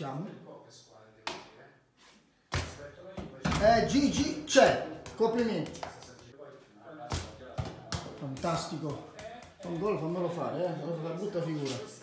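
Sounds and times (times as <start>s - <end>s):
toy ball bouncing on tiled floor: 7.1s - 10.1s.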